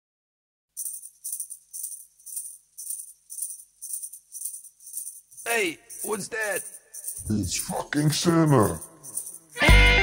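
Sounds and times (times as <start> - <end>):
jingling percussion shaken: 0.8 - 10.0.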